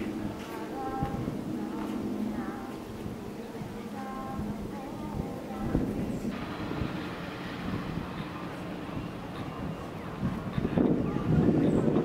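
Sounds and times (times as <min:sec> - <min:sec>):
faint background noise: 0:00.0 - 0:12.0
wind rumble on microphone: 0:00.0 - 0:12.0.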